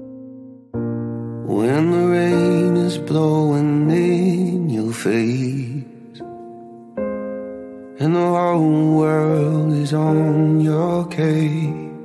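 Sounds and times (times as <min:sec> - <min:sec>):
low voice singing: 0:01.4 - 0:06.3, 0:08.0 - 0:12.0.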